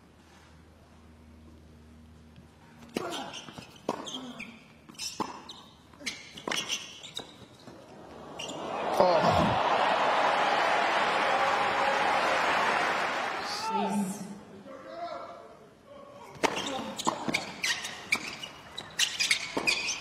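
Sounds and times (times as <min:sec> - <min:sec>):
tennis rackets striking ball: 0:04.9 - 0:05.6, 0:16.4 - 0:20.0
crowd cheering: 0:07.9 - 0:14.1.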